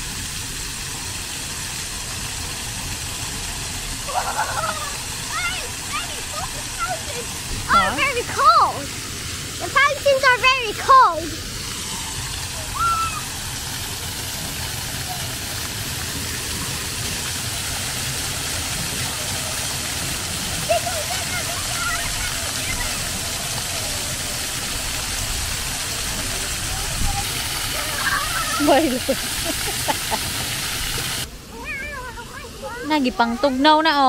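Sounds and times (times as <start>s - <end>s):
fountain jets splashing on paving: 0.0s - 34.0s
faint children's voices: 12.2s - 13.4s, 18.7s - 28.7s, 31.3s - 34.0s.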